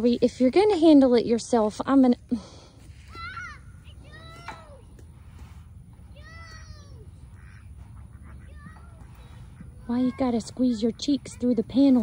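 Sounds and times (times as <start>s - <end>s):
peacock calling: 6.4s - 12.0s.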